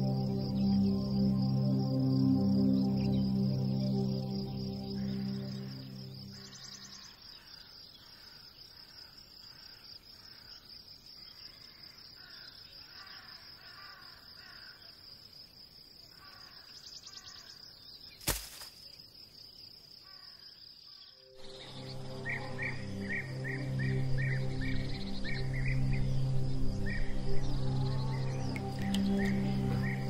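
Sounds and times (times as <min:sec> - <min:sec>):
background music: 0:00.0 - 0:07.0, 0:21.3 - 0:30.0
high insect drone: 0:00.0 - 0:30.0
bird calls: 0:04.7 - 0:15.0, 0:16.1 - 0:18.9, 0:26.8 - 0:30.0.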